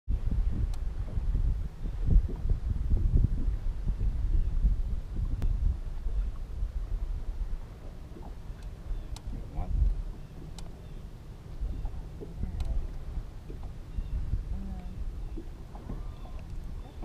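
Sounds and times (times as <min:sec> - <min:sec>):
wind buffeting microphone: 0:00.1 - 0:17.0
faint clicks: 0:08.2 - 0:10.8, 0:11.8 - 0:13.8, 0:14.8 - 0:16.7.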